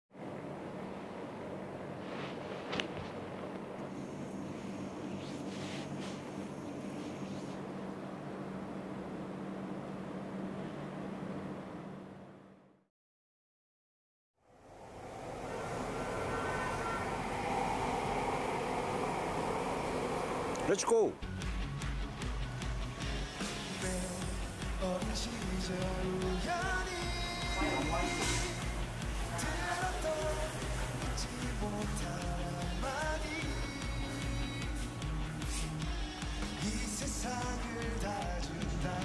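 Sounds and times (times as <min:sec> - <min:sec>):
low electrical hum: 0:00.2 - 0:12.8, 0:14.4 - 0:21.6.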